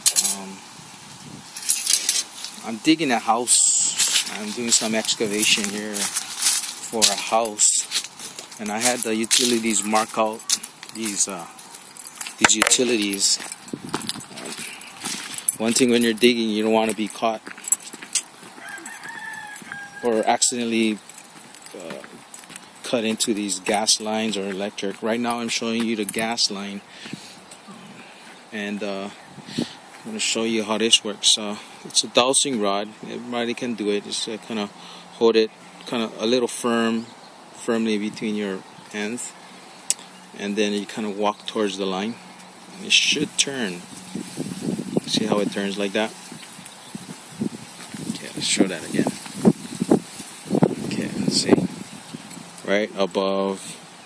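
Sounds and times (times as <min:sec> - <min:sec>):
faint outdoor background: 0:00.0 - 0:54.0
footsteps on concrete: 0:04.0 - 0:23.2, 0:44.0 - 0:52.4
rooster crowing: 0:18.4 - 0:20.5.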